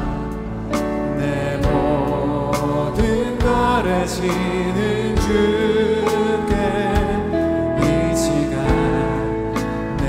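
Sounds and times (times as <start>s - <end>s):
drum and cymbal hits: 0.0s - 4.5s, 5.2s - 7.4s
band accompaniment: 0.0s - 10.0s
vocalists singing worship song: 0.0s - 10.0s.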